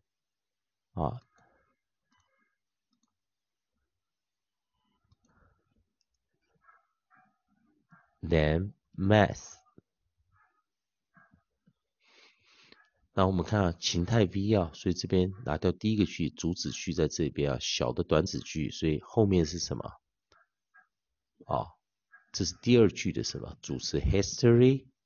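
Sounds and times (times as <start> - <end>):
man saying a syllable: 1.0 - 1.2, 8.2 - 9.6, 13.2 - 19.9, 21.5 - 21.7, 22.4 - 24.8
faint clicks: 5.0 - 5.4.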